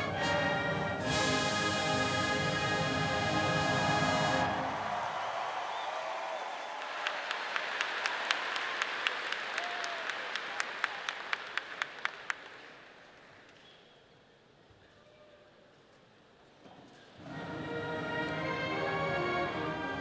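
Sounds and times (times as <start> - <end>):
brass band holding chord: 0.0 - 5.0, 17.2 - 20.0
crowd applause: 1.6 - 13.5
sharp separate claps: 6.8 - 13.3.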